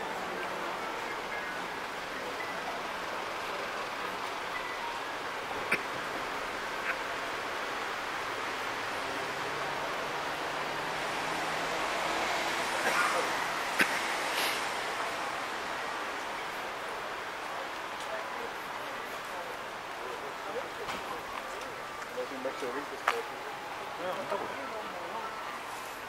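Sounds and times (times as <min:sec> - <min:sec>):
faint far-off voices: 0:00.0 - 0:26.0
traffic noise: 0:00.0 - 0:26.0.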